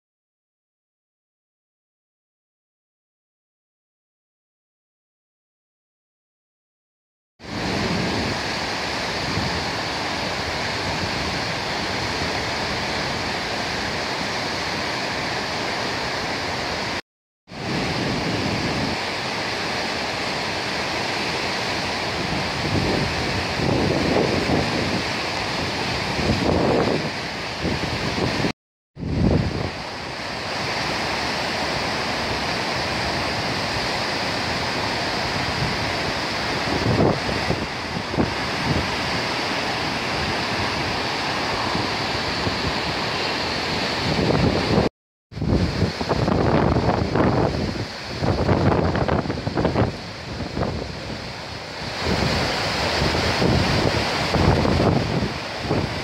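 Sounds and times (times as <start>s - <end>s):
river water rushing: 7.4s - 56.0s.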